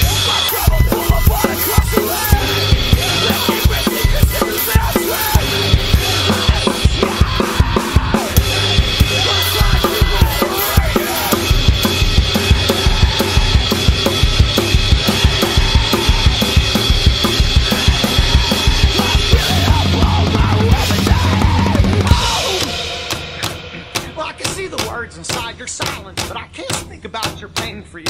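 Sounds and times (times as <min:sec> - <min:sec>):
crashing cymbals: 0:00.0 - 0:26.3
backing track music: 0:00.0 - 0:27.8
bass drum strikes: 0:00.8 - 0:27.7
snare drum strikes: 0:22.0 - 0:27.9.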